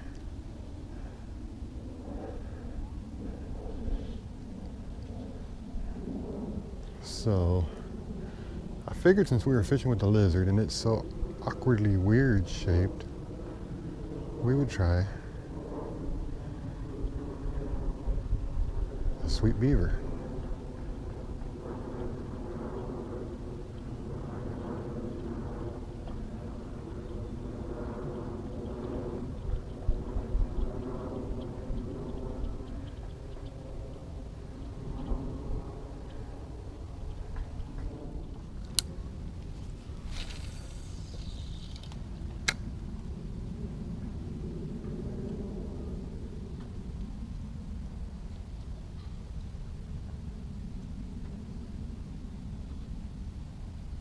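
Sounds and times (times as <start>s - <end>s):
faint motor-like drone: 0.0s - 54.0s
low steady rumble: 0.0s - 54.0s.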